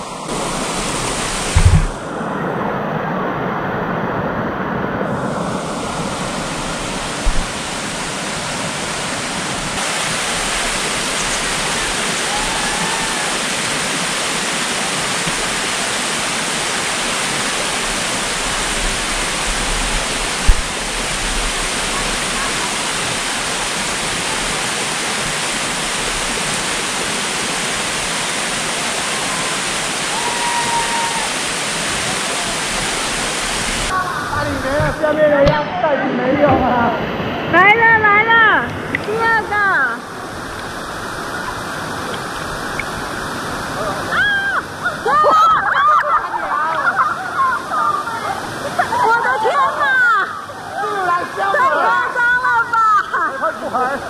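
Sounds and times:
water rushing down rock: 0.3 - 2.1, 5.5 - 35.6
knocks: 1.5 - 2.0.

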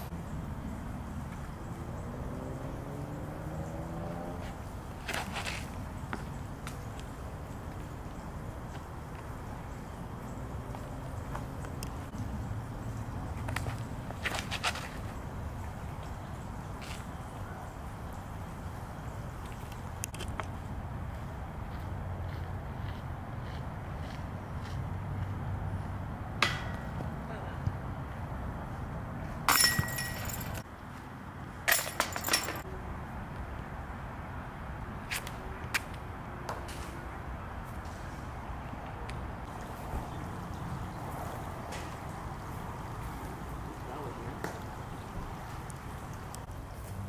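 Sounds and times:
metal chains jingling and clanking: 29.5 - 30.6, 31.7 - 32.6.

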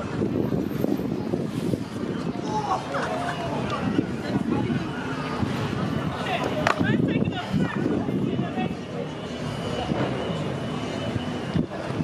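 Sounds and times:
wind on microphone: 0.0 - 8.8, 11.1 - 12.0.

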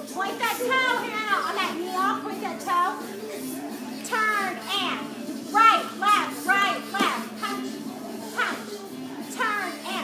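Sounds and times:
recorded dance music: 0.0 - 10.0.

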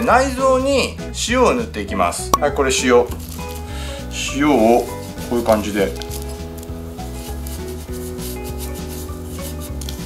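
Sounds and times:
hands rubbing salt into fish: 3.1 - 10.0
background music with beat: 6.3 - 10.0.

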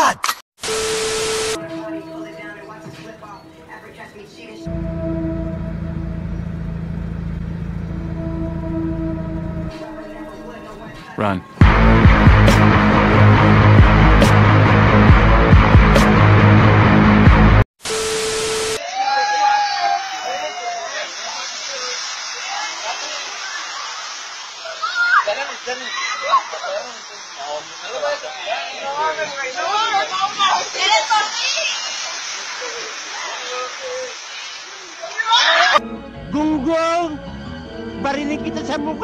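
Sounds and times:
outdoor hiss: 0.6 - 4.6, 17.8 - 35.8
music: 1.6 - 6.6, 7.9 - 17.6, 35.8 - 39.0
steady low tone: 4.6 - 10.7
young people shouting and squealing: 18.8 - 21.5, 22.4 - 27.3, 28.4 - 35.8.

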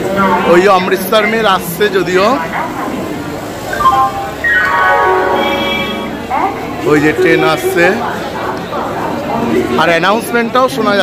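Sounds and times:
crowd chatter: 0.0 - 11.0
electronic announcement chime: 3.7 - 6.3.

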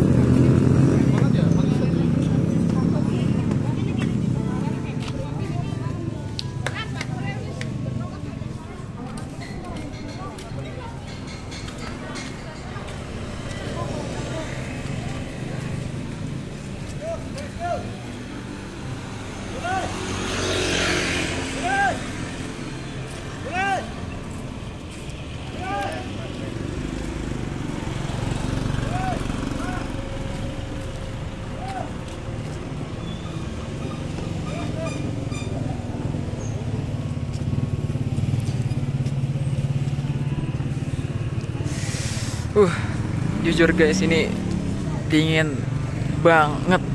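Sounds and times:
cars and motorbikes passing: 0.0 - 46.9
voices of people: 0.2 - 46.9.

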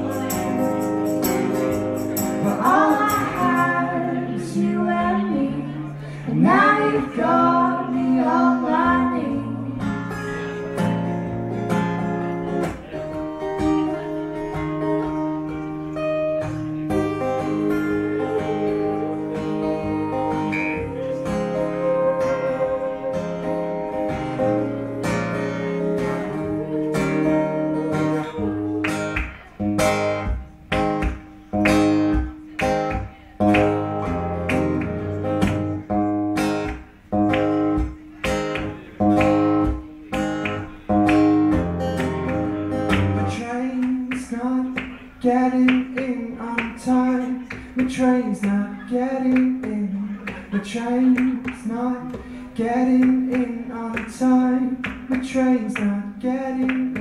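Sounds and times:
acoustic guitar strumming: 0.0 - 57.0.

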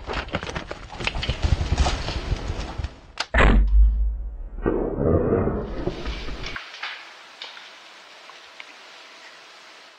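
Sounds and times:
animal running through dry leaves: 0.0 - 3.0.

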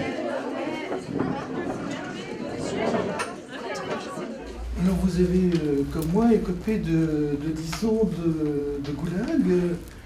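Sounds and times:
indistinct chatter: 0.0 - 10.0.

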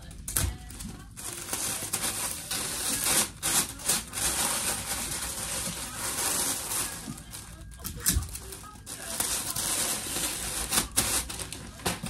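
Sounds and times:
packaging rustling and scraping: 0.0 - 12.0.

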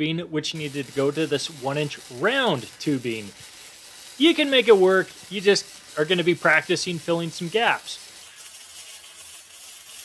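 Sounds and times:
welding arc hissing: 0.4 - 10.0.

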